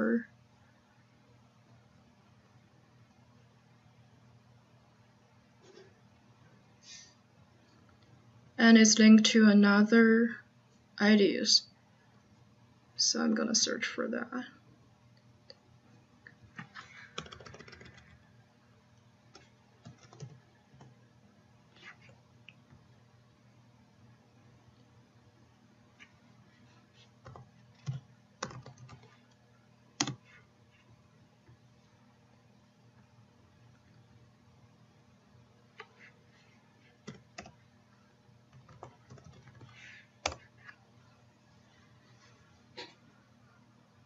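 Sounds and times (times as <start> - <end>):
computer keyboard typing: 16.6 - 18.2, 19.3 - 21.0, 27.2 - 29.2, 30.0 - 30.4, 37.0 - 37.6, 38.5 - 40.5.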